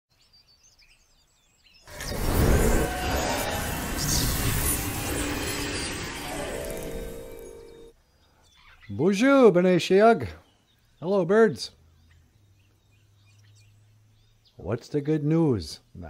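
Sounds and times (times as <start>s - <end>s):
intro music with sustained tones: 1.9s - 8.0s
faint bird chirps: 7.4s - 9.1s.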